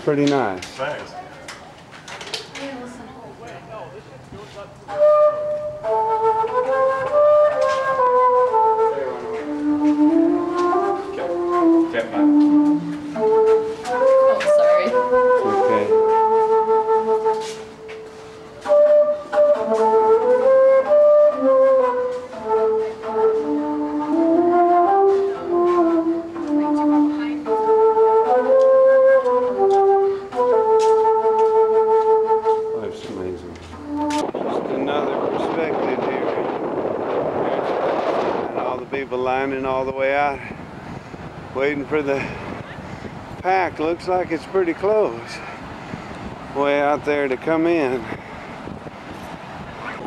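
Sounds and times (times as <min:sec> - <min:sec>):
flute melody: 0:04.6 - 0:36.4
steady rushing noise: 0:31.8 - 0:50.0.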